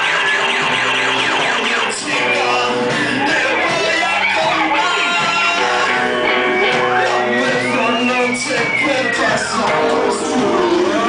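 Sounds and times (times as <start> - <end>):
electronic falling pitch sweeps: 0.0 - 2.8
live band playing: 0.0 - 11.0.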